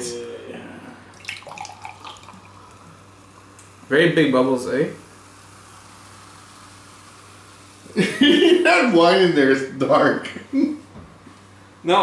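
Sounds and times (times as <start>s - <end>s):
low steady hum: 0.0s - 12.0s
soda fizzing in a glass: 1.1s - 3.1s.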